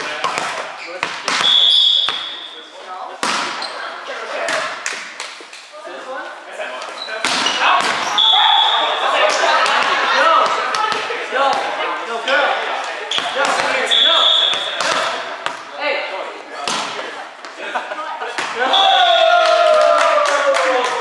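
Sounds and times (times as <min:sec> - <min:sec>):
volleyball thumps: 0:00.1 - 0:02.4, 0:03.2 - 0:03.7, 0:13.1 - 0:13.9, 0:14.5 - 0:15.7
players calling out: 0:06.8 - 0:21.0.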